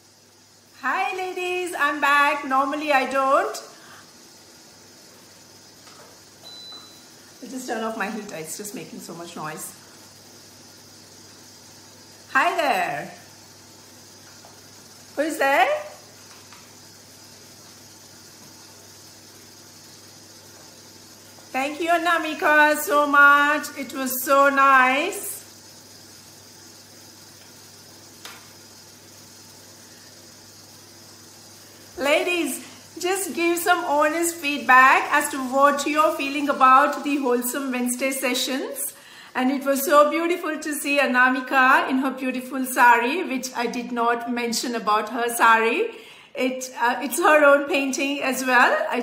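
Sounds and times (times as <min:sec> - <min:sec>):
background hiss: 0:00.0 - 0:41.9
high-pitched electronic beep: 0:06.4 - 0:07.0.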